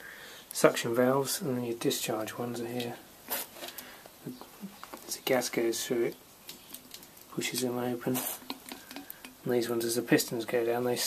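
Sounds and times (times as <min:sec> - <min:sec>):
short hiss: 0:08.1 - 0:09.4.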